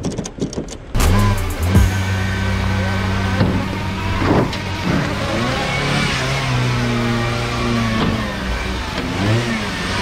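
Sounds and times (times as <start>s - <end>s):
car engine revving: 1.0s - 10.0s.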